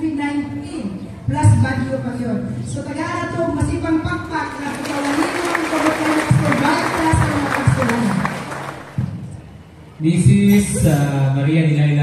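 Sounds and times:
voices: 0.0s - 9.0s
audience clapping: 4.5s - 9.1s.

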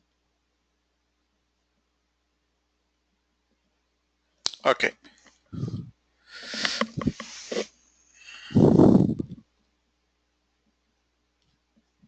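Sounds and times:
man speaking: 4.5s - 4.9s
man's indistinct vocal sounds: 5.6s - 7.6s.

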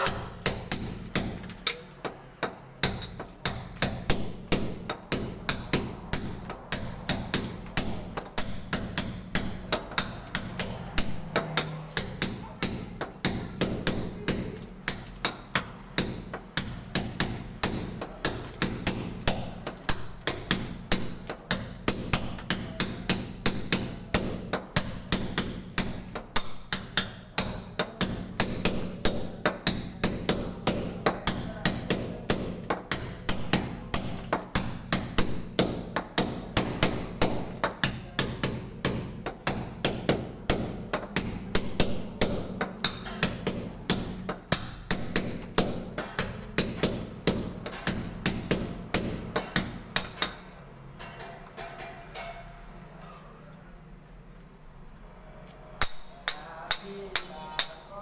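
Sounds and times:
hammer and chisel on wall: 0.0s - 53.2s, 55.6s - 58.0s.

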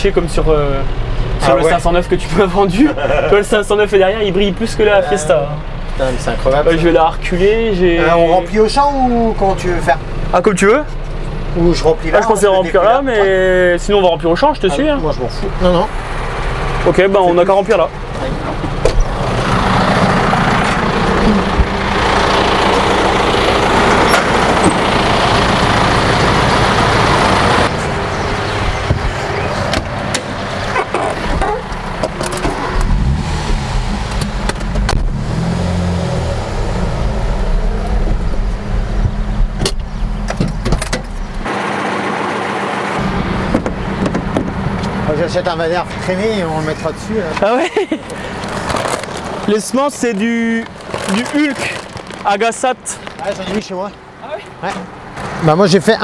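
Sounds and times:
tractor engine running: 0.0s - 54.2s
small car engine revving: 18.0s - 44.9s.

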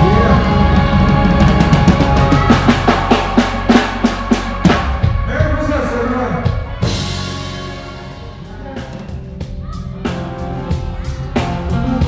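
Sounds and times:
drum fill: 0.0s - 12.0s
held bass note and chord: 0.0s - 12.0s.

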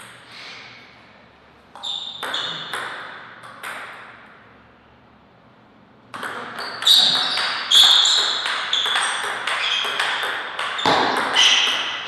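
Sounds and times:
table tennis ball bouncing: 1.7s - 4.4s, 6.1s - 12.0s.

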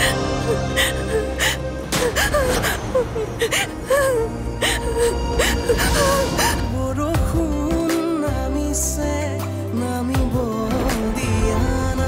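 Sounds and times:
woman sobbing: 0.0s - 6.9s.

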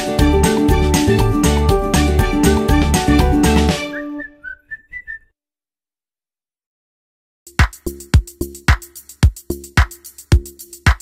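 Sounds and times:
quick whistled notes: 3.8s - 5.3s.

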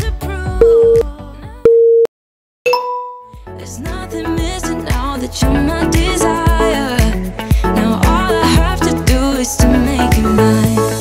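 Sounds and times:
interval timer beep: 0.6s - 1.0s, 1.6s - 2.1s, 2.7s - 3.3s
second electronic tone: 1.7s - 2.1s
background music: 2.8s - 11.0s.

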